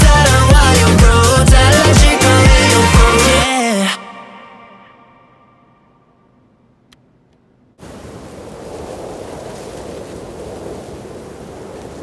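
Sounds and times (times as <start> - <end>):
song ending: 0.0 - 5.5.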